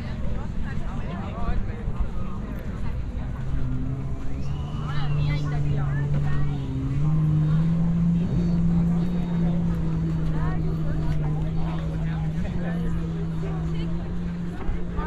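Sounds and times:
people's voices: 0.0s - 15.0s
motor droning: 3.5s - 15.0s.

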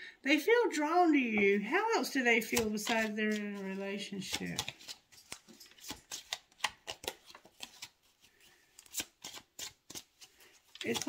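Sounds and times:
cards being shuffled: 2.4s - 11.0s.

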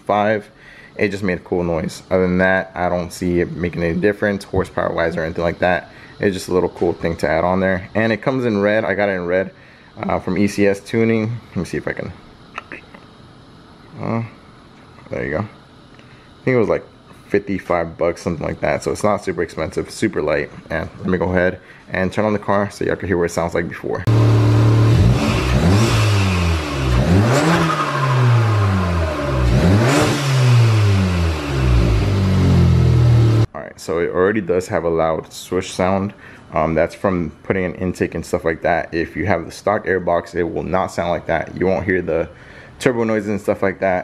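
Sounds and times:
car engine revving: 24.1s - 33.5s.

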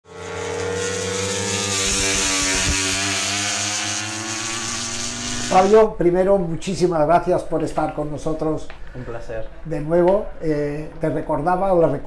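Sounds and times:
motorcycle engine revving high: 0.1s - 5.8s.

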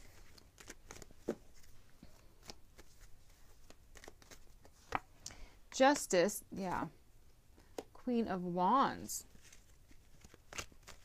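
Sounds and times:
cards being shuffled: 0.0s - 5.1s, 9.3s - 11.0s.

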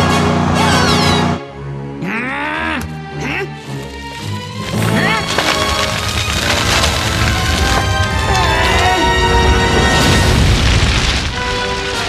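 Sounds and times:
background music: 0.0s - 12.0s
cartoon crackling and popping: 3.7s - 12.0s.

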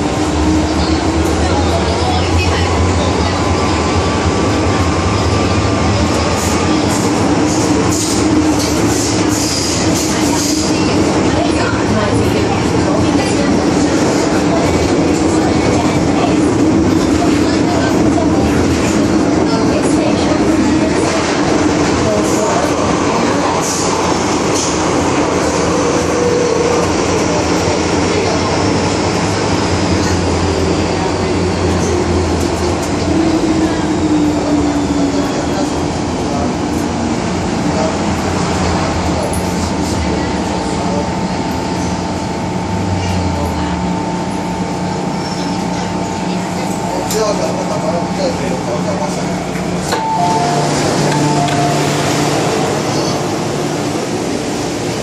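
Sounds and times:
train wheels rumbling: 0.0s - 55.0s
steady tone: 50.0s - 54.4s.

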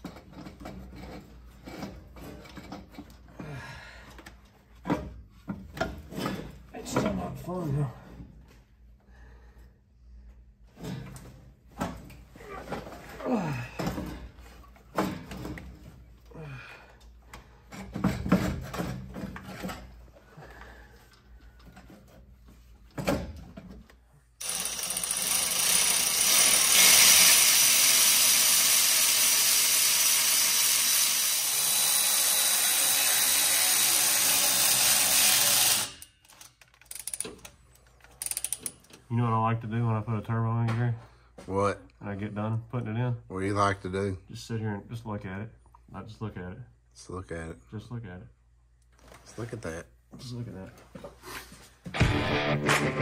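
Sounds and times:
power tool running: 24.4s - 36.0s.

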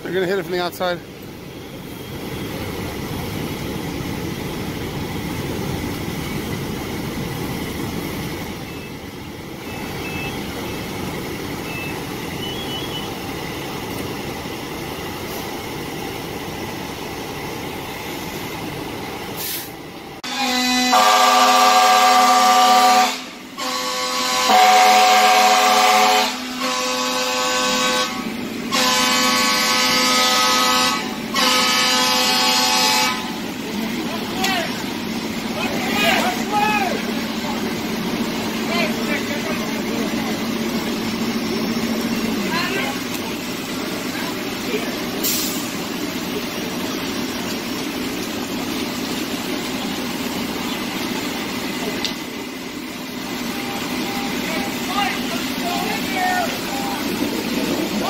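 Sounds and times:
fire engines idling: 0.0s - 58.0s
air horn blasts: 20.2s - 33.4s.

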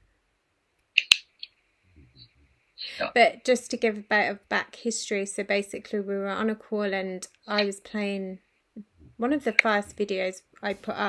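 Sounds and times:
sharp click: 1.0s - 1.5s
short crackles: 1.0s - 1.5s.

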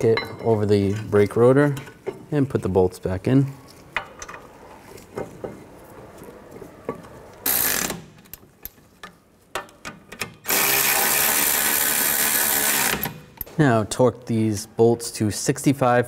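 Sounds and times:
clicks and knocks of tool handling: 6.8s - 10.5s, 12.9s - 13.6s
electric ratchet running: 7.4s - 8.2s, 10.5s - 13.2s.

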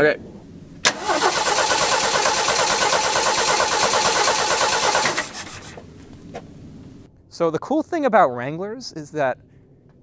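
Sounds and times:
engine cranking by starter motor: 0.8s - 5.9s.

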